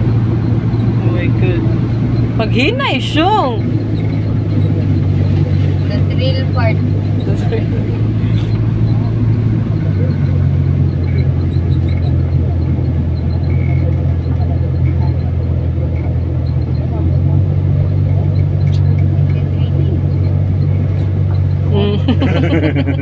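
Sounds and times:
motorcycle engine droning: 0:00.0 - 0:23.0.

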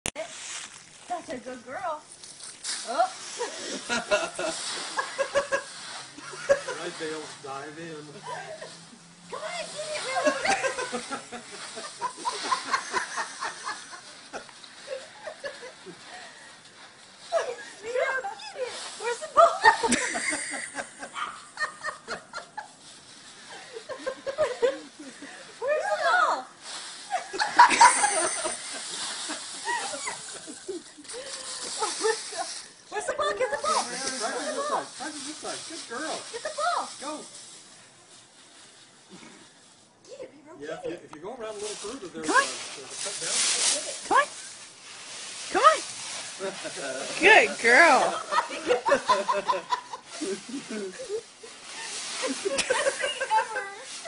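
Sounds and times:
dry leaves rustling: 0:00.1 - 0:39.9, 0:41.3 - 0:54.0
dog digging in leaves: 0:02.2 - 0:16.0, 0:16.9 - 0:19.9, 0:27.9 - 0:39.4, 0:41.4 - 0:48.2, 0:50.1 - 0:54.0
person laughing: 0:19.8 - 0:22.1, 0:27.4 - 0:28.8.

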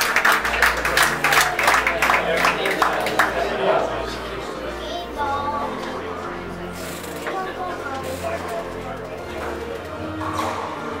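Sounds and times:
audience clapping: 0:00.0 - 0:03.8
low musical tones: 0:00.0 - 0:11.0.

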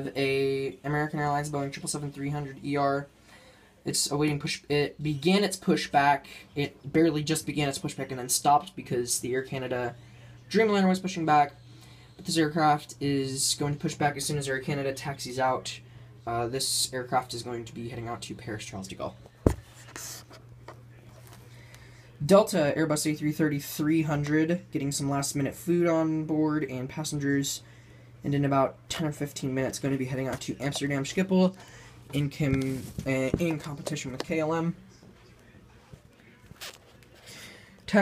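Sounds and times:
steady low hum: 0:00.0 - 0:38.0
camera handling thump: 0:19.5 - 0:19.7.

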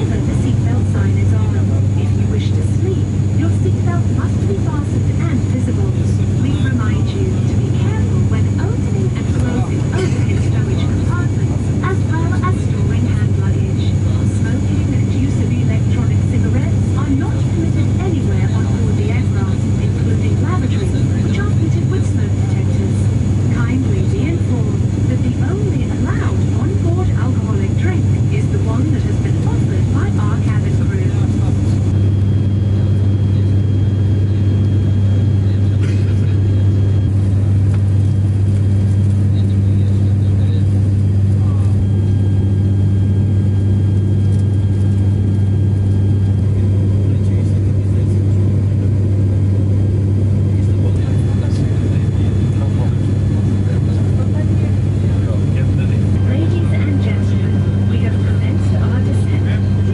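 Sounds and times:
turboprop cabin drone: 0:00.0 - 0:59.9.

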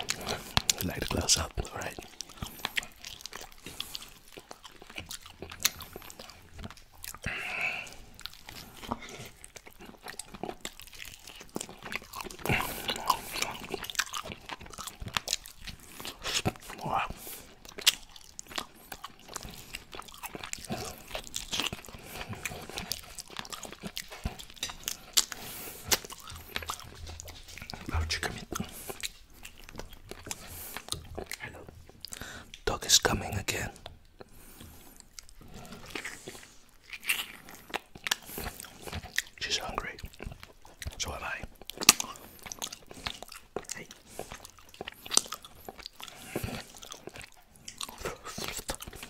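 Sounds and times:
open-mouth chewing and lip smacking: 0:00.0 - 0:49.0.

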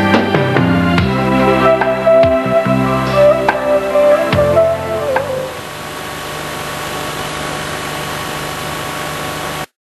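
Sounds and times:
background music note: 0:00.0 - 0:05.7.

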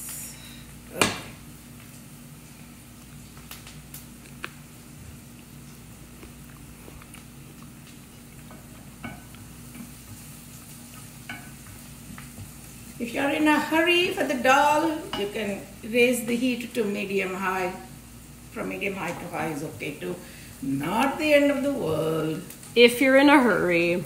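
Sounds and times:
steady low hum: 0:00.0 - 0:24.0
onions sizzling in oil: 0:07.2 - 0:24.0.

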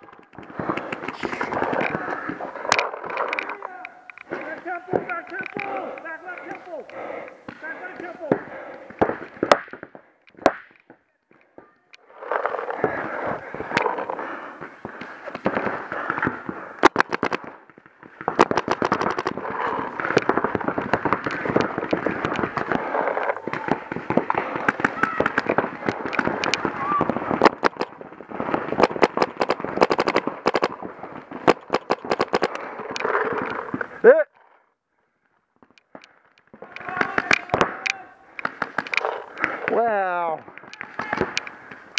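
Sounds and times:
paintball markers firing: 0:00.0 - 0:11.0, 0:15.0 - 0:33.8, 0:35.8 - 0:39.8, 0:40.6 - 0:41.9
players shouting: 0:03.4 - 0:08.5, 0:22.4 - 0:27.2, 0:36.6 - 0:38.4.

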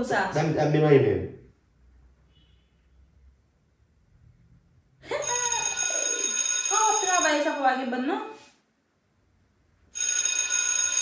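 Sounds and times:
mobile phone ringtone: 0:05.2 - 0:07.6, 0:10.0 - 0:11.0.

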